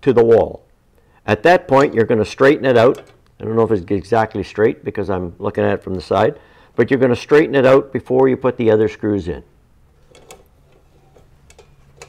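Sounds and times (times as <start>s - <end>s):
metal lid clicks: 2.9s - 3.3s.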